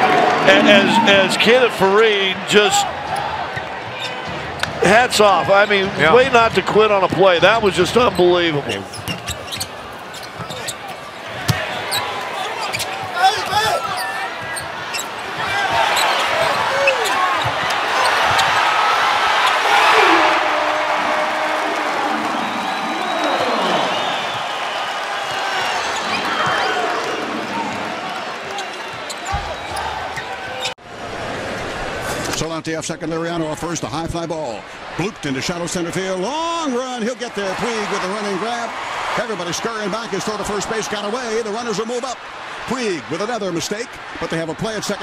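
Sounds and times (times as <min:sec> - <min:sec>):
crowd cheering: 0:00.0 - 0:32.0, 0:35.0 - 0:45.0
basketball bouncing on court: 0:11.3 - 0:12.0.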